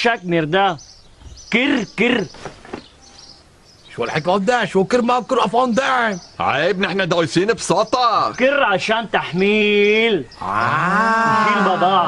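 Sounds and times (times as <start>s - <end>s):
long drawn-out call: 10.3s - 12.0s.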